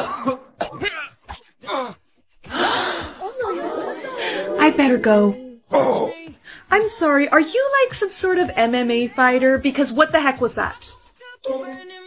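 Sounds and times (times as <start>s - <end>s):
man groaning in pain: 0.7s - 4.6s, 5.7s - 6.3s.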